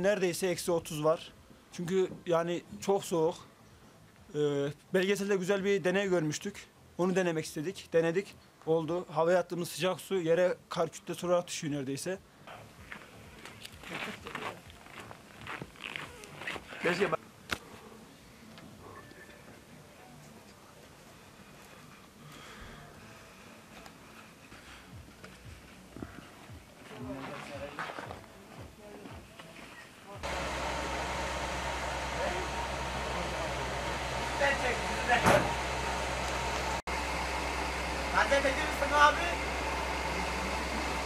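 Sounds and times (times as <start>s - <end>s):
low mechanical hum with hiss: 28.3s - 41.0s.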